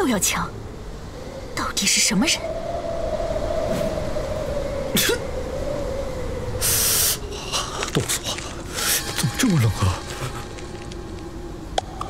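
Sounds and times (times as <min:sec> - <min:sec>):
whistling wintry wind: 0:00.0 - 0:12.0.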